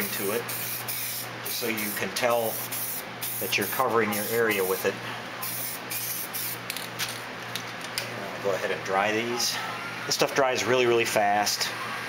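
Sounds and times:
fan hum: 0.0s - 12.0s
aerosol can spraying: 0.4s - 6.6s.

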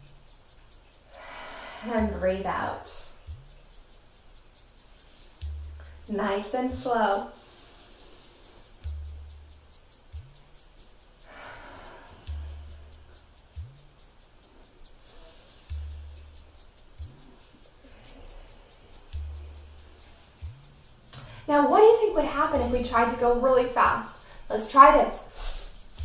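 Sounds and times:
high ticking: 0.0s - 26.0s
faint slow breaths: 1.0s - 1.9s, 7.3s - 8.9s, 11.2s - 13.4s, 14.5s - 20.4s, 25.3s - 26.0s.

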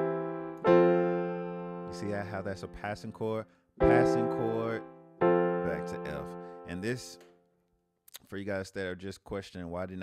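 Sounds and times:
keyboard piano chords: 0.0s - 7.5s.

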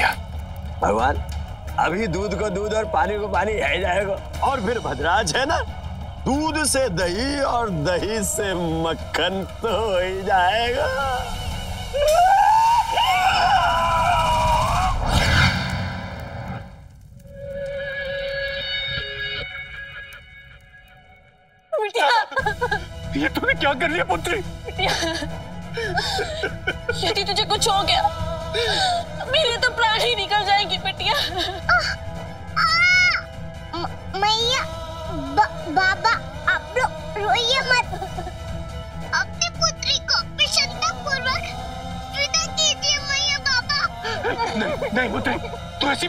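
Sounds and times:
background music: 0.0s - 46.0s.

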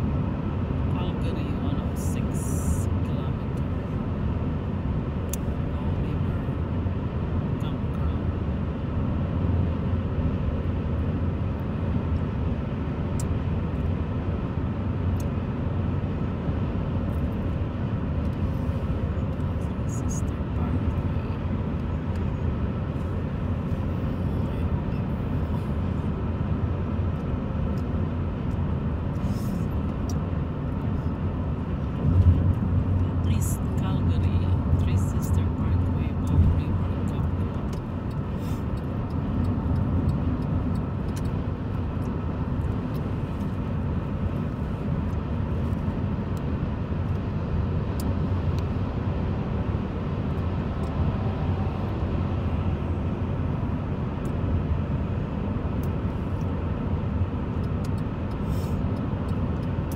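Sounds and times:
car road noise rumble: 0.0s - 59.9s.

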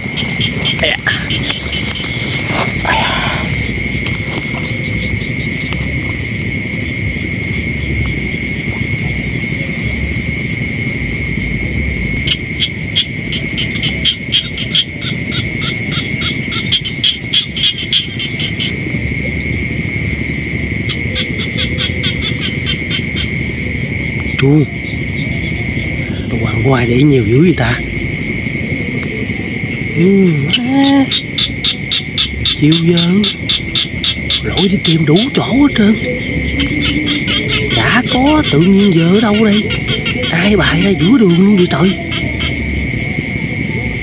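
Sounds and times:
high insect trill: 0.0s - 44.0s
low rumble: 0.0s - 44.0s
pulsed frog calls: 0.0s - 44.0s.

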